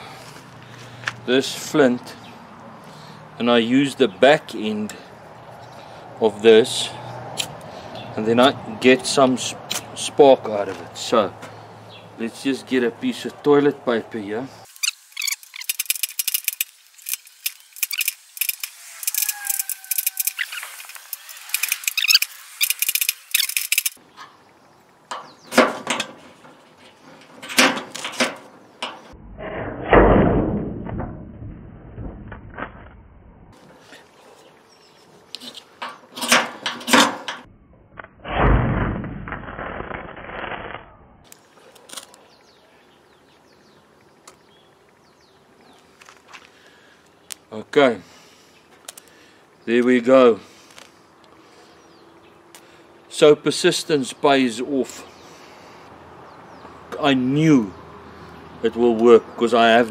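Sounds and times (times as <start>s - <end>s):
striker scraping flint rod: 14.7s - 24.0s.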